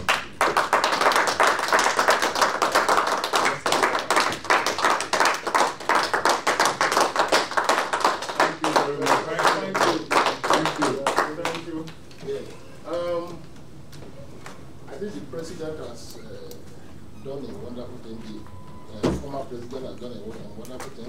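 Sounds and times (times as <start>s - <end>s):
people clapping in applause: 0.0s - 12.0s.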